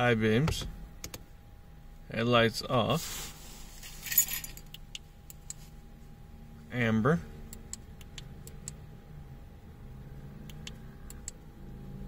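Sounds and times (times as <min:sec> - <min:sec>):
vehicle idling hum: 0:00.0 - 0:12.0
metallic keys jingle: 0:03.9 - 0:04.7.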